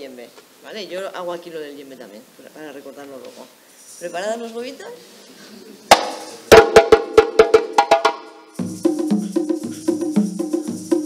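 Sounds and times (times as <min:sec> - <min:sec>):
egg shakers hissing: 0:03.6 - 0:04.3, 0:06.0 - 0:06.5, 0:08.2 - 0:11.0
djembe and dunun drums: 0:05.9 - 0:11.0.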